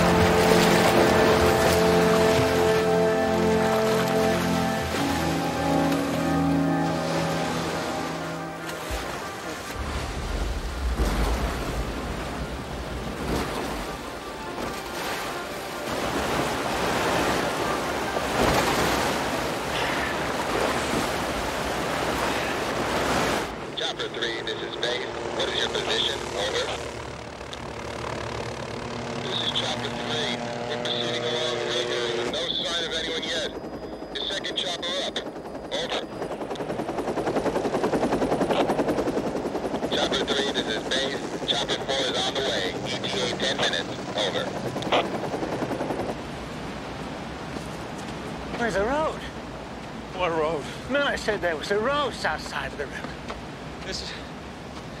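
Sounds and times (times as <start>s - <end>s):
music: 0.0s - 10.3s, 13.4s - 16.2s
helicopter flying: 0.0s - 55.0s.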